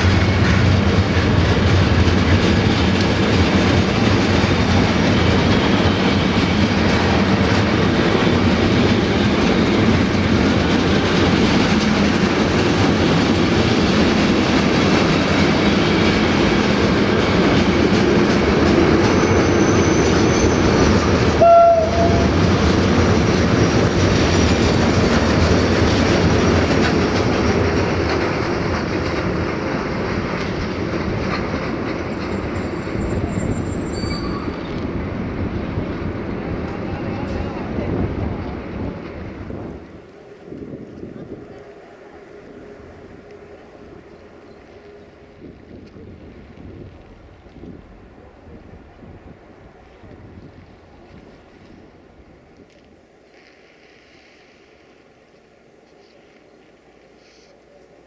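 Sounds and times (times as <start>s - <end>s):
freight train wheels rumbling on rail: 0.0s - 58.0s.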